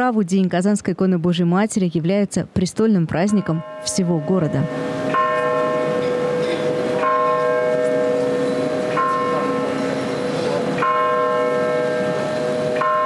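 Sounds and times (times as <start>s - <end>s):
church bell ringing: 3.3s - 13.0s.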